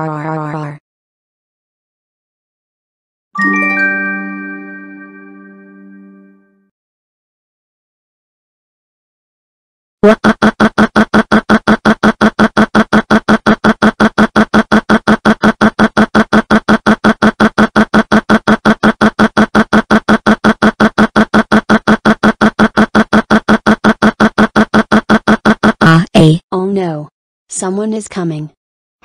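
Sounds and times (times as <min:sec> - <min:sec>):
short pitched sound repeating rapidly: 0:10.0 - 0:26.1.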